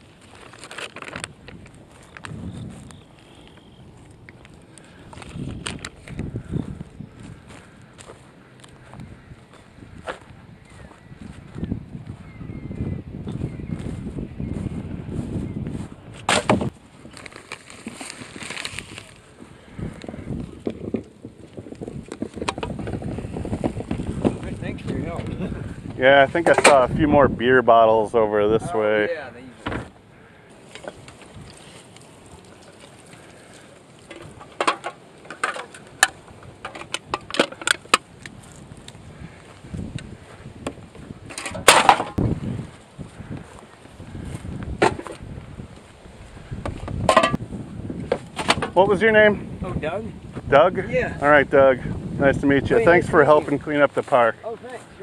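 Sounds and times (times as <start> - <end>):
plastic bag crinkling: 0.0 - 2.4, 17.0 - 19.3
footsteps on grass: 0.0 - 20.6, 38.1 - 41.3, 42.1 - 47.0, 53.2 - 55.0.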